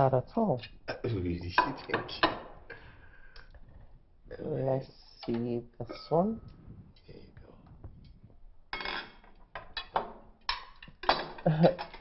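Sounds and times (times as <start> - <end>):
spoon clinking on bowl: 5.9 - 6.4.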